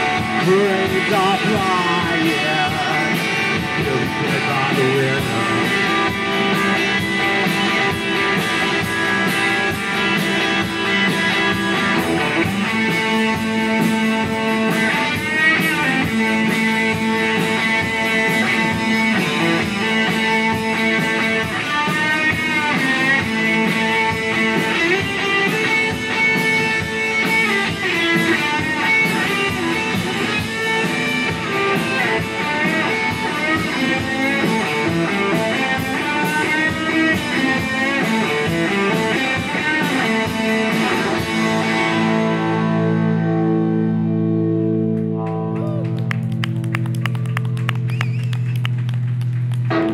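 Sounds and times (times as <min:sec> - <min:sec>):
drum kit and cymbals: 0:00.0 - 0:42.4
electric guitars playing: 0:00.0 - 0:49.9.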